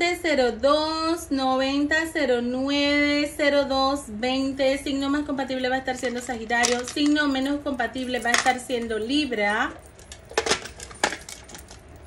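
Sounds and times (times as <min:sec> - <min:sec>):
dice rattling in plastic box: 0:05.9 - 0:07.5, 0:10.0 - 0:11.8.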